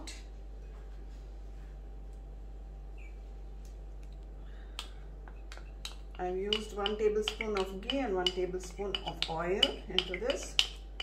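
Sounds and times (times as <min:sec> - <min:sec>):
cooktop low hum: 0:00.0 - 0:11.0.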